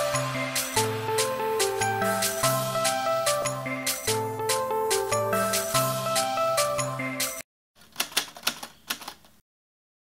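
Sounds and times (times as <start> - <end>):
typewriter key clicks: 7.8 - 9.4.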